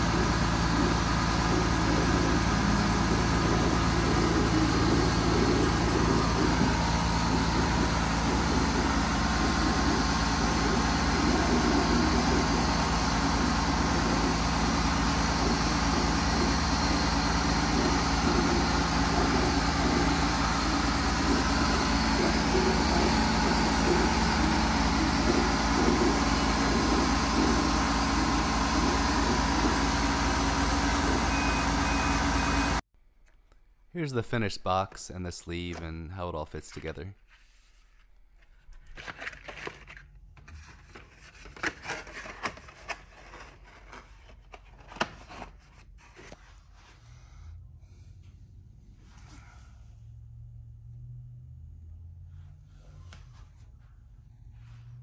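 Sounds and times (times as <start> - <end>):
laser cutter whirring: 0.0 - 32.8.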